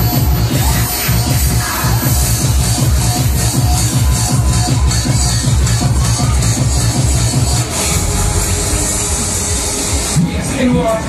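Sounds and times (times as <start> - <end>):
dance music: 0.0 - 11.0.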